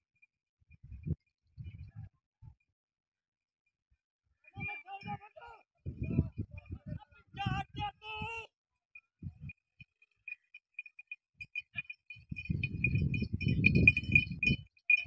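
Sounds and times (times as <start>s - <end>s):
faint clinking: 9.8s - 15.0s.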